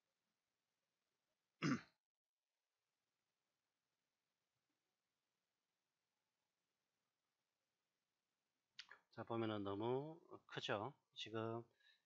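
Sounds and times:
person clearing throat: 1.6s - 2.0s.

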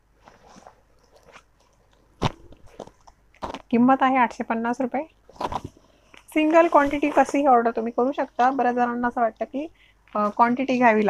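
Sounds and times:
fabric rustling and crinkling: 0.0s - 3.8s, 5.2s - 9.5s.

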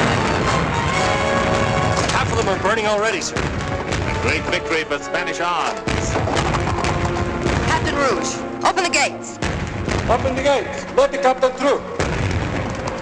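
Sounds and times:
cannon booms: 0.0s - 4.6s, 5.9s - 8.3s, 9.4s - 10.7s, 12.0s - 13.0s
gunfire: 0.0s - 4.6s, 5.9s - 8.3s, 9.4s - 10.8s, 12.0s - 13.0s
orchestral film score: 0.0s - 13.0s.

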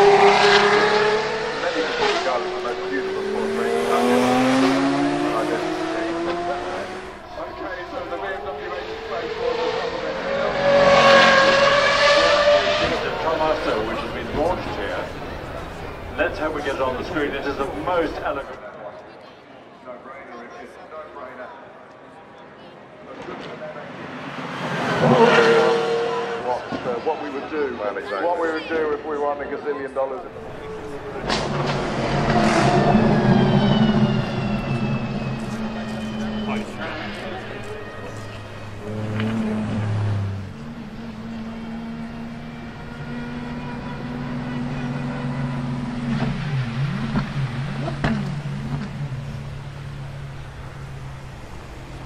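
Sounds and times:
car engine accelerating past: 0.0s - 18.2s, 23.9s - 26.9s, 30.2s - 52.0s.

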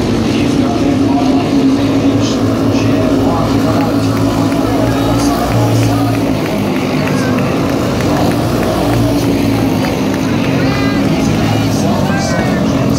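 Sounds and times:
race car engines running: 0.0s - 12.9s.

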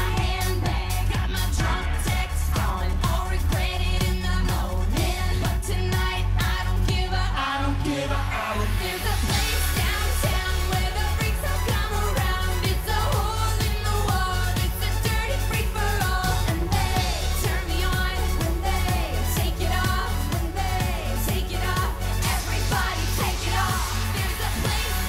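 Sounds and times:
heavy bass electronic beat: 0.0s - 7.9s, 8.5s - 25.0s
woman singing: 0.0s - 25.0s.

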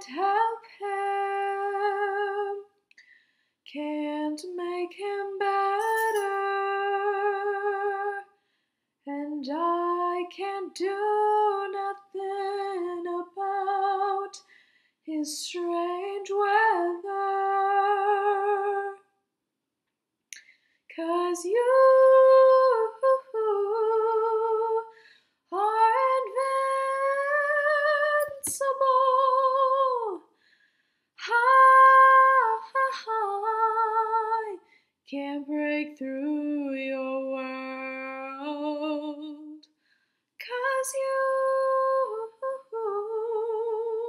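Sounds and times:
young woman singing unaccompanied: 0.0s - 2.7s, 3.7s - 8.3s, 9.1s - 14.4s, 15.1s - 19.0s, 20.9s - 24.9s, 25.5s - 30.3s, 31.2s - 39.6s, 40.4s - 44.0s.

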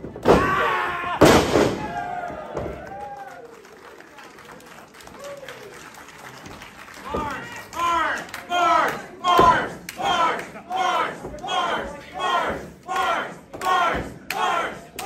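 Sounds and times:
crowd chanting in rhythm: 8.4s - 15.0s.

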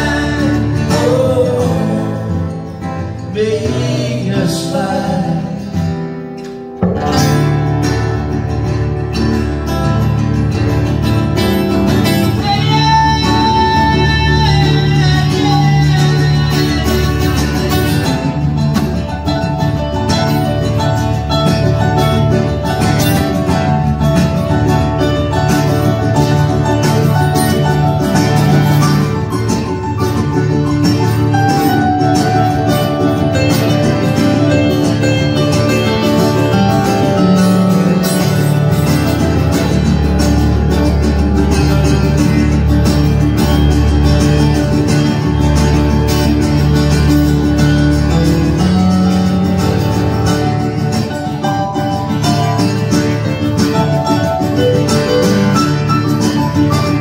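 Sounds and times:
acoustic guitars playing: 0.0s - 57.0s.

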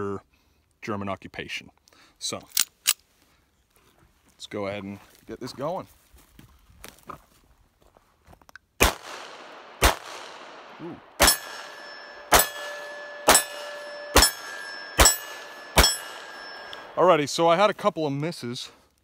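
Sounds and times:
pistol shots: 8.8s - 17.0s
steel plate target ringing: 11.2s - 17.4s.

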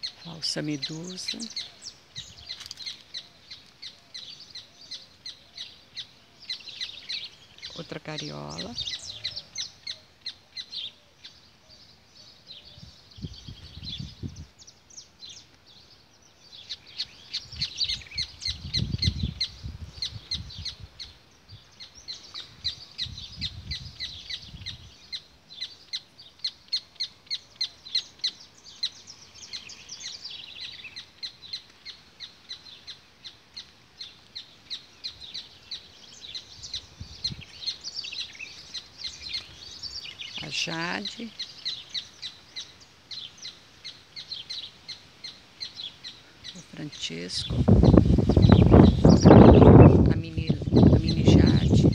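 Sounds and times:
small birds chirping: 0.0s - 51.9s.

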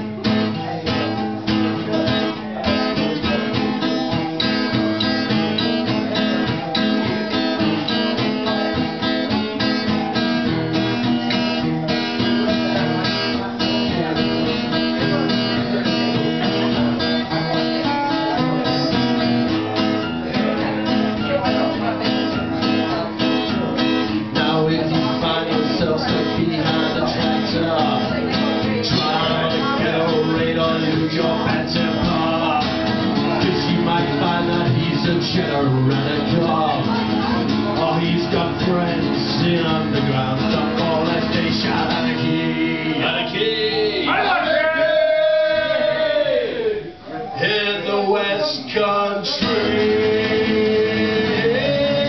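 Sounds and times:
guitars strumming: 0.0s - 52.0s.

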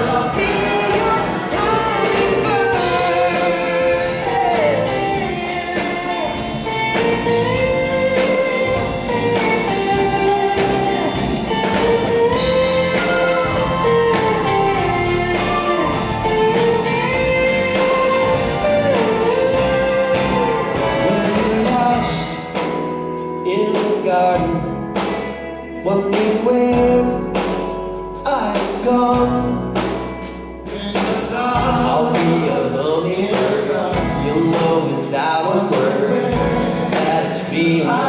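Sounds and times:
backing voices: 0.0s - 7.8s
lead guitar melody: 0.0s - 38.0s
live rock band playing: 0.0s - 38.0s.

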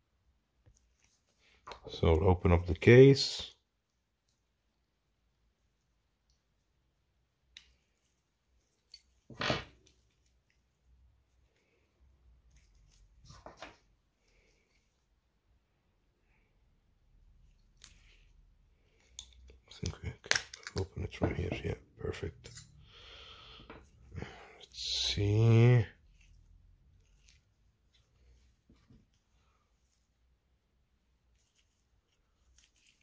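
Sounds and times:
rubbing on watch case: 31.2s - 33.0s.

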